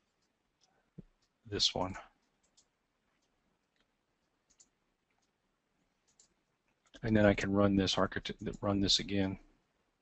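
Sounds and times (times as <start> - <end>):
faint computer mouse clicks: 0.1 - 5.4, 6.0 - 7.0.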